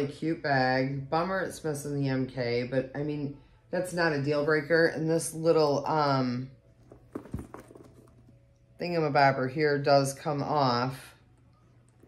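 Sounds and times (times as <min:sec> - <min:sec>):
fabric bag rustling: 0:06.8 - 0:08.4.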